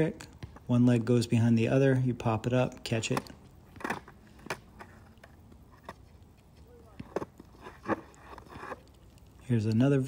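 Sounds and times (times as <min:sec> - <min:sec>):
skateboard knocking on hard court: 0:06.8 - 0:08.0.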